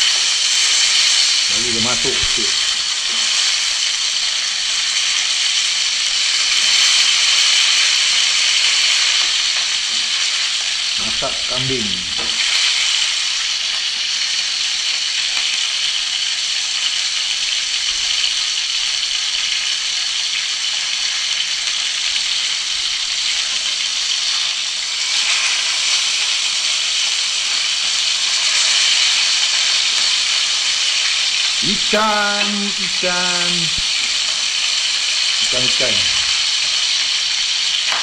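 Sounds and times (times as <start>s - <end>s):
fish sizzling in hot oil: 0.0s - 38.0s.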